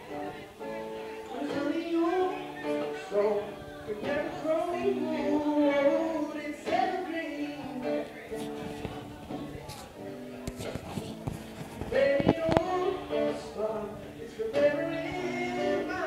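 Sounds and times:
man singing: 0.0s - 10.2s, 11.7s - 16.0s
acoustic guitar strumming: 0.0s - 16.0s.

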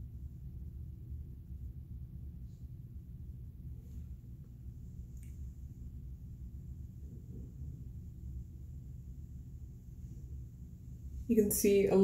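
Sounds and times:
low hum: 0.0s - 12.0s.

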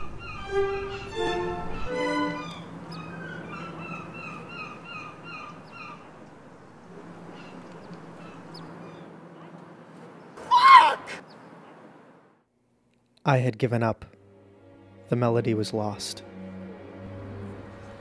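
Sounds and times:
low steady hum: 1.0s - 10.4s, 11.2s - 18.0s
small bird chirping: 2.4s - 10.4s, 11.2s - 11.8s.

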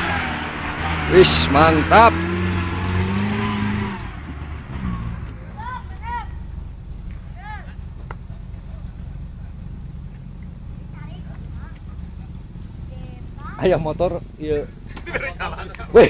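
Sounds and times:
jeep engine rumbling: 0.0s - 16.0s.

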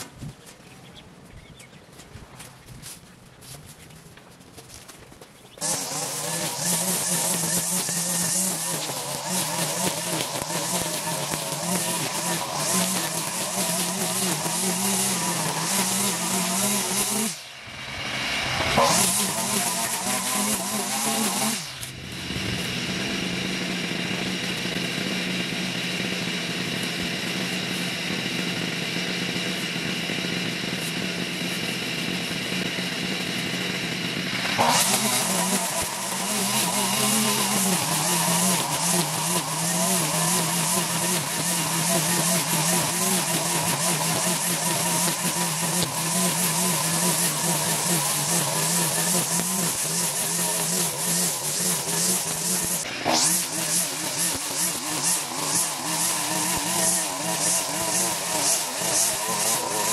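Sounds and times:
string trimmer engine running: 5.6s - 59.9s
trimmer line cutting grass: 5.6s - 59.9s.

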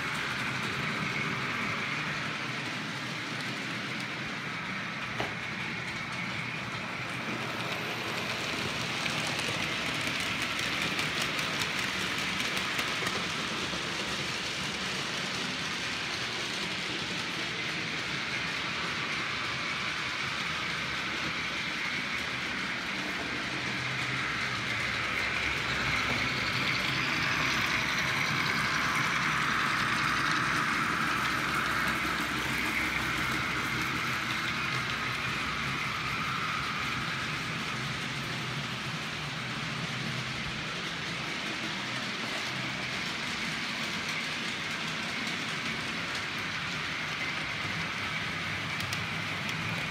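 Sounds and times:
model trains whirring on rails: 0.0s - 49.9s.

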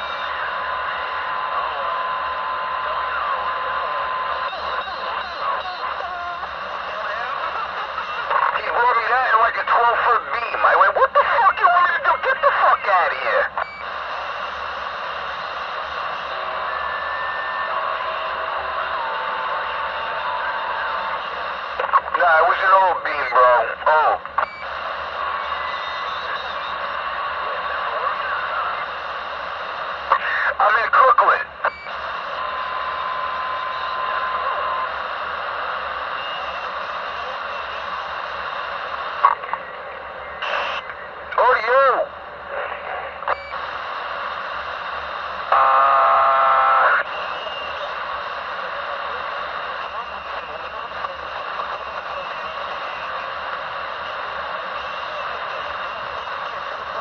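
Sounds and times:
garbled radio transmissions: 0.0s - 57.0s
radio static hiss: 0.0s - 57.0s.

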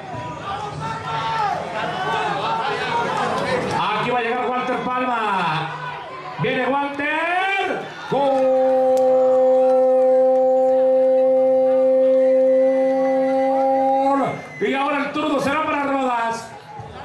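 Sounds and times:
man shouting long drawn-out goal: 4.4s - 16.2s.

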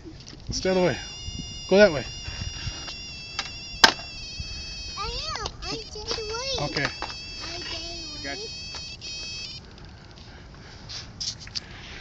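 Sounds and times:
high-pitched whine: 0.6s - 9.5s.

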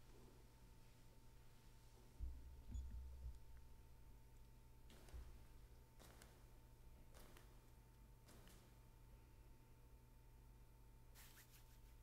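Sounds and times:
faint steady hum: 0.0s - 12.0s
soft low bumps: 2.1s - 3.8s.

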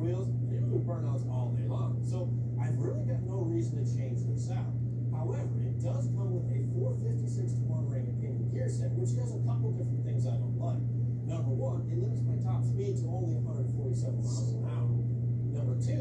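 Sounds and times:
steady low hum: 0.0s - 16.0s
television speech: 0.0s - 16.0s.

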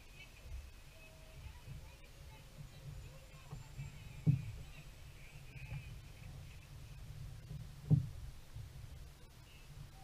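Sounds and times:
low rumbling noise: 0.0s - 10.0s
dull thump: 2.6s - 9.1s.

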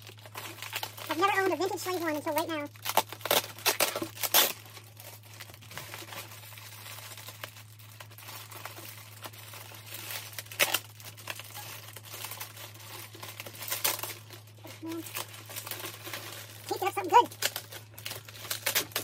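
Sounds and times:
bubble wrap crinkling: 0.0s - 19.0s.

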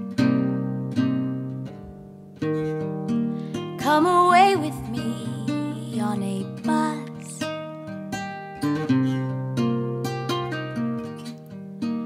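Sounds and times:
guitar plucked accompaniment: 0.0s - 12.0s.

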